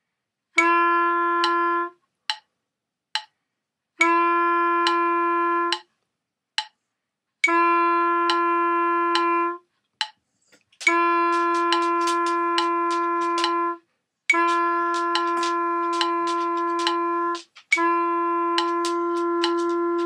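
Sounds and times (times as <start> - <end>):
wind instrument long notes: 0.6 - 2.0, 4.0 - 5.8, 7.4 - 9.6, 10.8 - 20.0
metronome clicking: 10.0 - 20.0.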